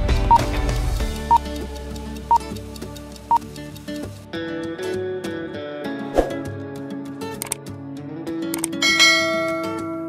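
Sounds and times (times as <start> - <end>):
acoustic guitar background music: 0.0 - 10.0
sharp clicks: 0.3 - 4.2, 7.3 - 7.7, 8.5 - 8.8
bell ding sound effect: 8.8 - 10.0.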